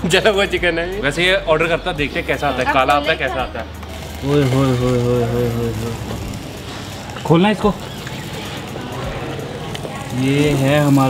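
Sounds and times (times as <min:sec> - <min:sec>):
people talking: 0:00.0 - 0:06.4, 0:08.5 - 0:11.0.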